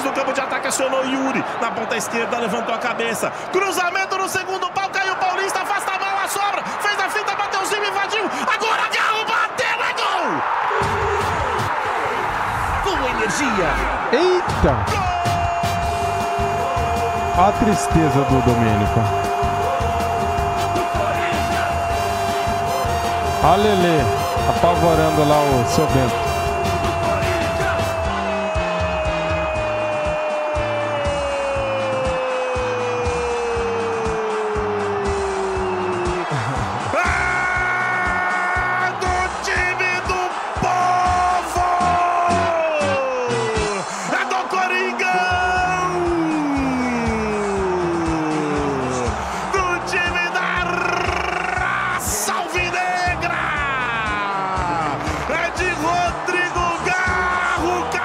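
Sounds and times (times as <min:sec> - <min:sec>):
radio narrator shouting goal: 0:00.0 - 0:36.0, 0:36.9 - 0:58.0.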